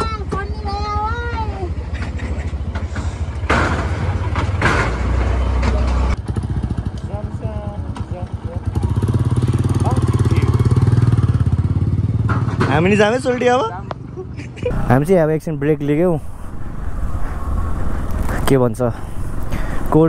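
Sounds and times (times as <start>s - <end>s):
motorcycle engines idling: 0.0s - 20.0s.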